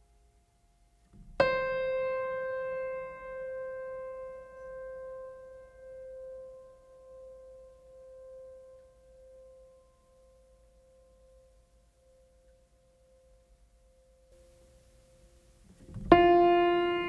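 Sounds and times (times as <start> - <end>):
piano note ringing: 1.2 - 10.3, 14.4 - 17.0.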